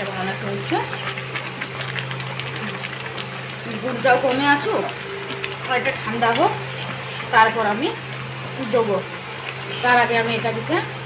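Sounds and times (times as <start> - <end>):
thick syrup bubbling and crackling: 0.0 - 11.0
spatula stirring syrup: 0.4 - 7.6.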